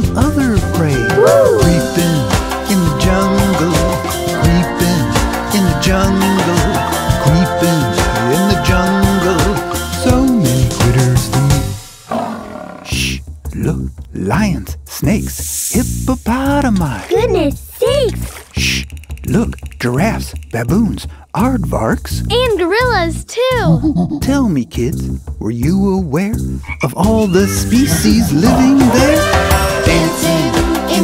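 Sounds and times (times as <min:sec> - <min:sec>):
bouncy children's song: 0:00.0 - 0:11.8, 0:12.8 - 0:31.0
cartoon lion roar: 0:01.0 - 0:02.1, 0:12.1 - 0:13.2, 0:26.7 - 0:30.1
person shushing: 0:01.1 - 0:01.9, 0:27.2 - 0:29.4.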